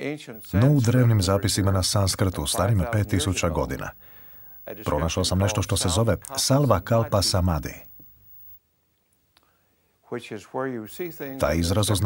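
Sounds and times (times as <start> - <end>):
man speaking: 0.3 - 8.1, 10.1 - 12.0.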